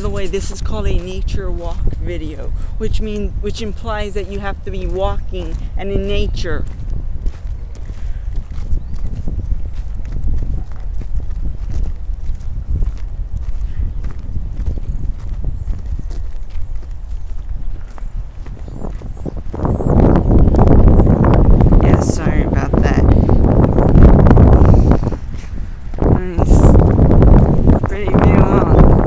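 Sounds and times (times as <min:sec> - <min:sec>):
wind rumbling on microphone: 0:00.0 - 0:29.0
footsteps walking: 0:03.6 - 0:21.8.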